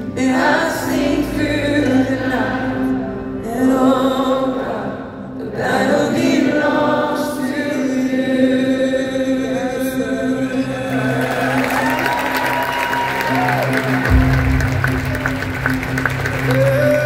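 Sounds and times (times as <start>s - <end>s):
crowd singing along: 0.0s - 12.1s
live worship band music: 0.0s - 17.0s.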